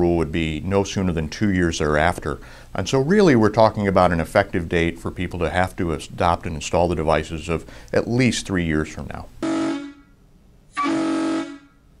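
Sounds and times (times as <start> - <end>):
truck air horn blast: 9.4 - 11.8.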